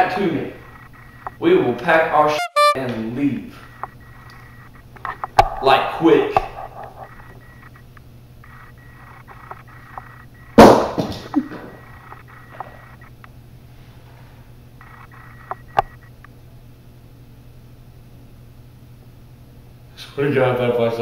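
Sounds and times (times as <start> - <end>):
steady low hum: 3.6 - 10.6.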